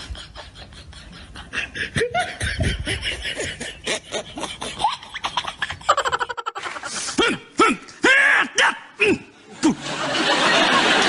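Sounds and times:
laughter: 0.0s - 7.3s, 9.6s - 11.0s.

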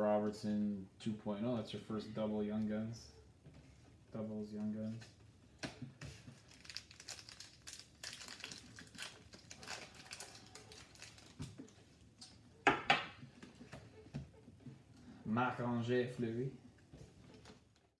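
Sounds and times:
foil wrapper crinkling: 6.2s - 11.8s.

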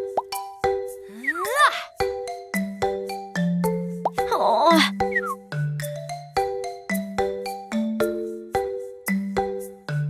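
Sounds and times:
light children's music: 0.0s - 10.0s.

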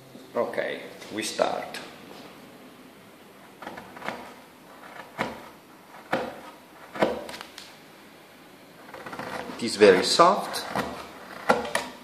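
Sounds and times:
carving gouge cutting wood: 3.6s - 7.3s, 8.8s - 9.6s, 10.5s - 12.0s.

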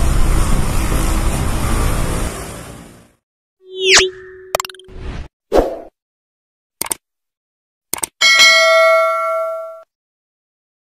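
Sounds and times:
quick cluster of clicks: 6.8s - 7.0s.

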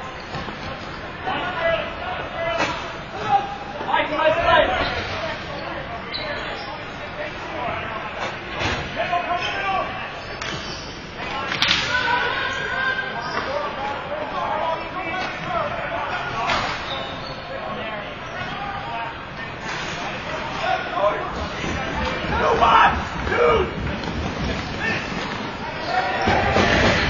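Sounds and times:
players shouting: 20.4s - 24.1s, 24.8s - 27.0s.

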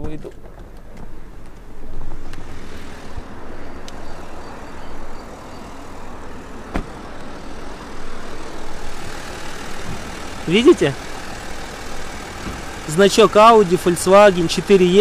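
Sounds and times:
traffic noise: 0.0s - 15.0s
diesel engine idling: 2.9s - 15.0s.

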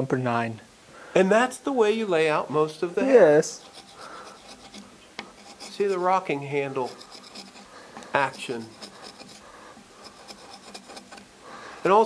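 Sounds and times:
man talking: 0.0s - 3.6s, 5.7s - 7.0s, 8.1s - 8.8s
gouge scratching into wood: 3.5s - 12.0s.

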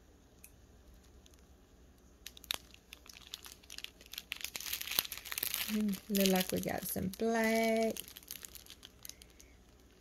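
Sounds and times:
plastic bags crinkling: 0.9s - 1.6s, 2.2s - 10.0s.

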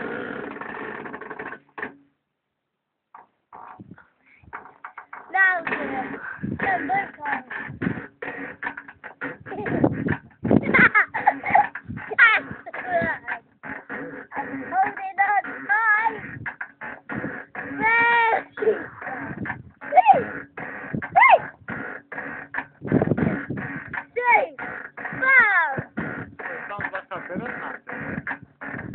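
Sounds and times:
low rumbling thumps: 3.7s - 28.9s
children chattering: 5.3s - 8.5s, 9.2s - 22.4s, 23.1s - 28.8s
children squealing and whimpering: 10.6s - 21.6s, 23.2s - 26.7s.

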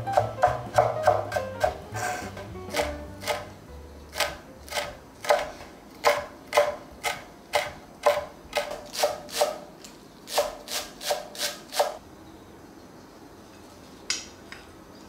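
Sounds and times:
knife chopping on cutting board: 0.0s - 3.5s, 4.1s - 9.6s.

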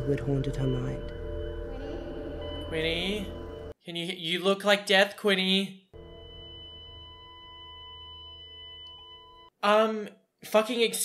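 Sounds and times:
low music drone: 0.0s - 3.8s
monitor high continuous beep: 0.0s - 3.8s, 6.0s - 9.6s.

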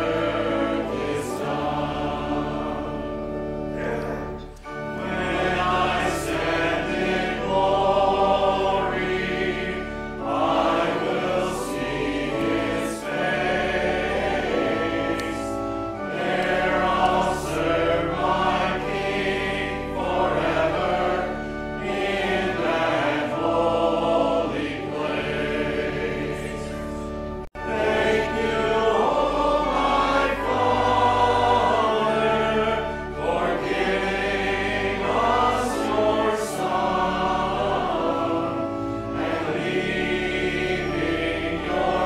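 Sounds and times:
congregation singing a hymn: 0.0s - 42.0s.

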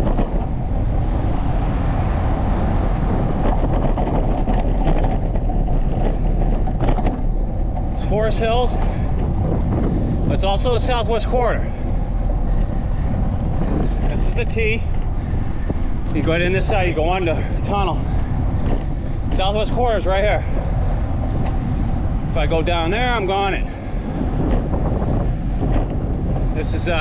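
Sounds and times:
bicycle tyres rolling on asphalt: 0.0s - 27.0s
wind buffeting microphone: 0.0s - 27.0s.

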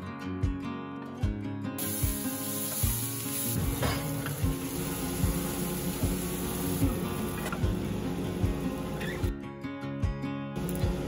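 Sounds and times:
background music with steady beat: 0.0s - 11.0s
onions sizzling in a skillet: 1.8s - 9.3s.

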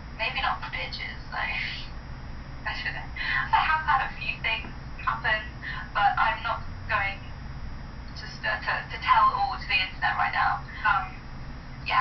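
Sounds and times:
steady low hum: 0.0s - 12.0s
woman's voice from phone speaker: 0.2s - 1.9s, 2.7s - 7.2s, 8.2s - 11.2s.

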